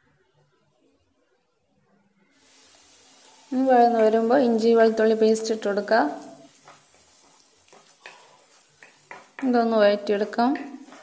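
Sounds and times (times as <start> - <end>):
light sizzle of frying: 2.2 - 11.0
wooden spatula scraping a pan: 2.4 - 11.0.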